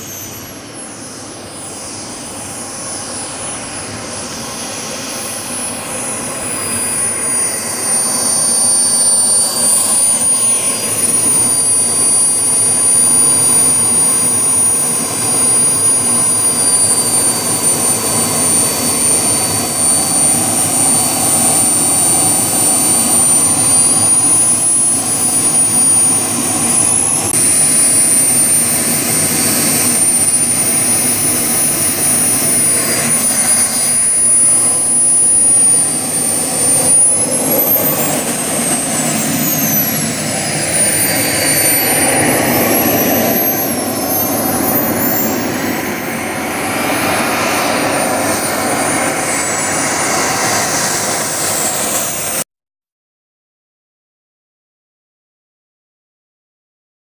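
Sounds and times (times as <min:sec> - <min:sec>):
model jet turbine whine: 0:00.0 - 0:52.5.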